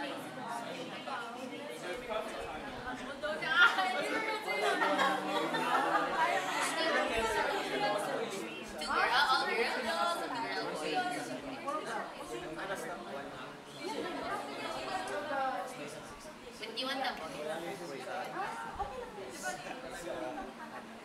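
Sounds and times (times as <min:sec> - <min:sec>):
overlapping group chatter: 0:00.0 - 0:21.0.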